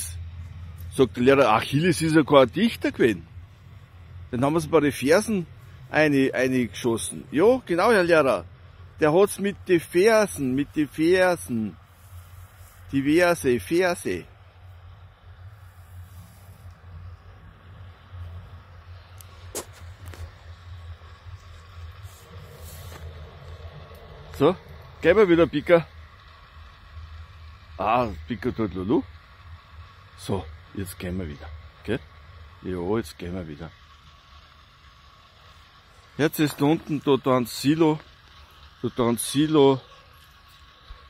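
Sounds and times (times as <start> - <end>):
light hiss: 0.0 - 41.0
low hum: 0.0 - 41.0.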